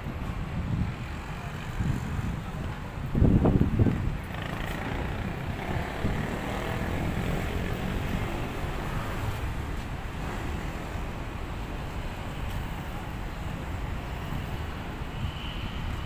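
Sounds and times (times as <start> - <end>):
city traffic rumble: 0.0 - 16.0.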